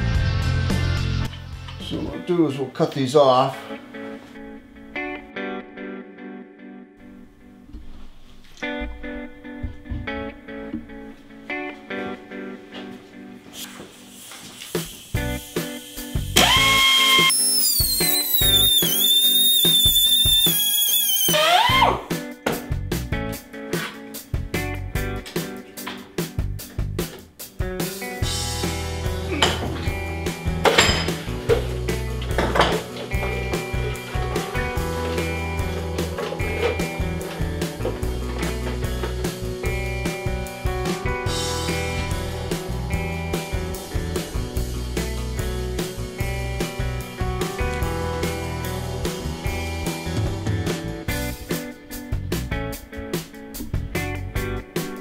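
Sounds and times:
guitar music: 0:00.0 - 0:55.0
rotary cutting tool whining: 0:16.4 - 0:22.0.

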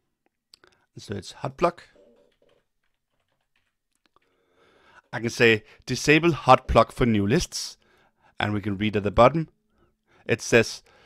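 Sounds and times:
soft keyboard typing clicks: 0:02.0 - 0:04.4.

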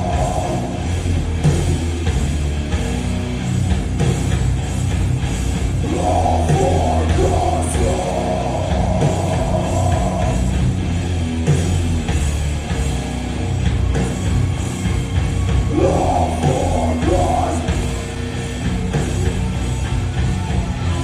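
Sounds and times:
electric guitar line: 0:00.0 - 0:21.0
live rock band playing: 0:00.0 - 0:21.0.

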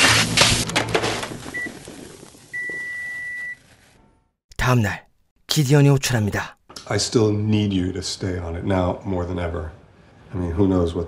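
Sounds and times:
crash of breaking things: 0:00.0 - 0:02.5.

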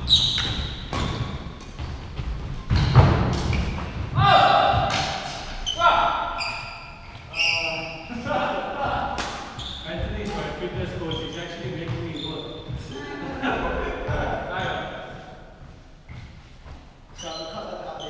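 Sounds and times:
shoe squeaks on wooden court: 0:00.0 - 0:01.9, 0:02.7 - 0:04.0, 0:05.2 - 0:08.1, 0:09.4 - 0:13.0, 0:17.1 - 0:18.0.

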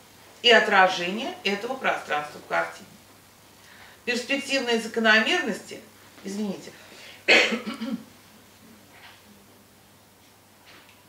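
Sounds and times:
throat clearing: 0:07.3 - 0:08.1
woman coughing: 0:07.3 - 0:08.1.

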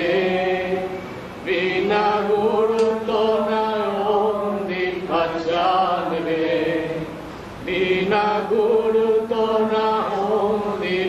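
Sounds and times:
person singing a devotional hymn: 0:00.0 - 0:11.0.

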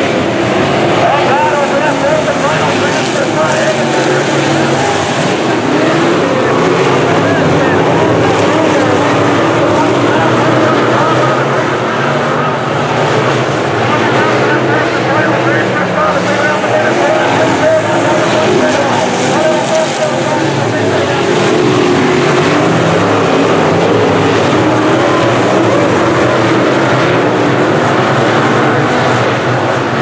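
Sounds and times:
race car engines passing: 0:00.0 - 0:30.0.

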